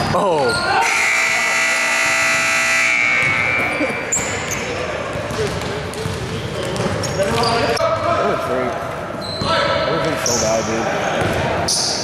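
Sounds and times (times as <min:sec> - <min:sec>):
scoreboard buzzer tone: 0:00.8 - 0:04.2
short high squeak: 0:03.5 - 0:04.7.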